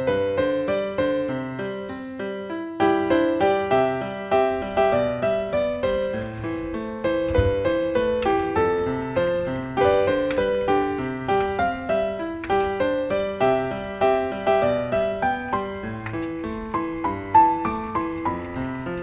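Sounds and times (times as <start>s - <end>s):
piano music: 0.0s - 19.0s.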